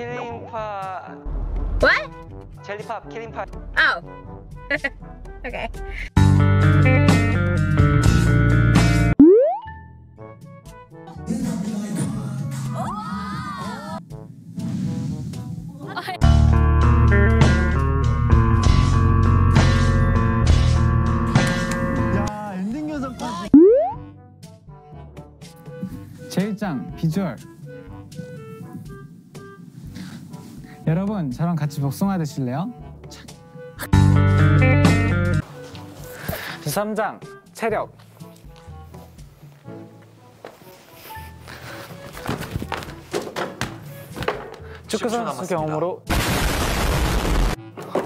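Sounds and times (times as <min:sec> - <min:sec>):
background music: 0:00.0 - 0:48.0
comedic boing sound effect: 0:09.2 - 0:09.8, 0:23.6 - 0:24.0
wavering voice-like sound: 0:23.6 - 0:24.0.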